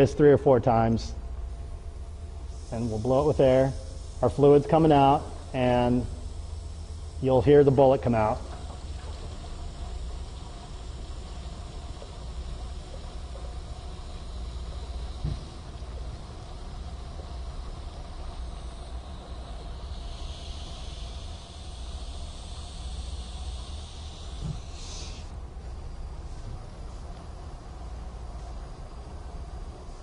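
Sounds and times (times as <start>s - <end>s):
pressurized air hissing through cable: 2.1s - 27.2s.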